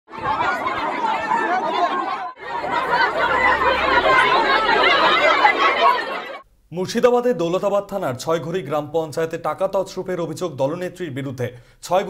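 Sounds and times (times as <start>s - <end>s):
crowd talking at once: 0.1s - 6.4s.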